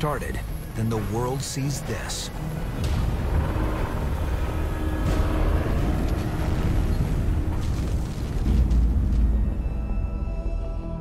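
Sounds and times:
aircraft rotors rumbling: 0.0 - 9.9.

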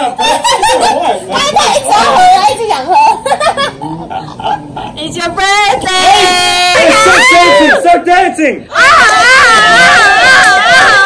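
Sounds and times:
people laughing and calling out: 0.0 - 5.2, 5.8 - 7.9, 8.7 - 11.0.

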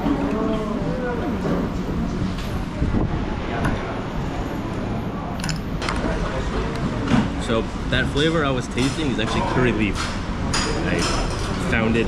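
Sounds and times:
faint voices: 0.0 - 10.0
low rumble of eatery: 0.0 - 12.0.

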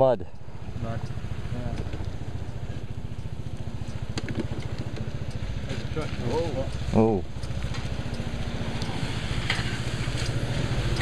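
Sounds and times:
motorcycle engine idling: 0.2 - 11.0.

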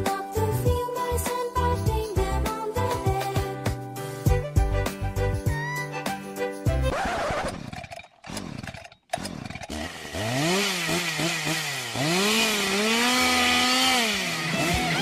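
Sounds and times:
buzzy revving whine: 9.9 - 15.0.

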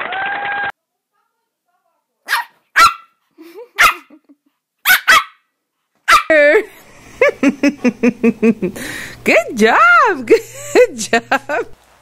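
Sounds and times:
dog barking: 2.2 - 3.2, 3.8 - 4.1, 4.8 - 6.3.

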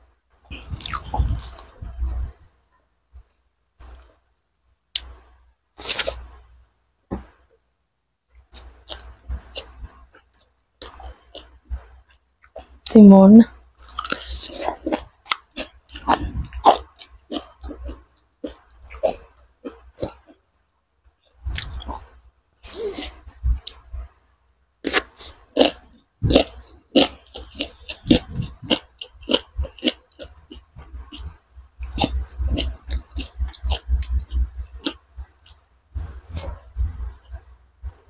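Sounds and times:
chewing: 0.4 - 2.4, 13.8 - 20.5, 21.3 - 24.1, 24.8 - 38.0
crisp crunches of cucumber: 13.8 - 19.2.

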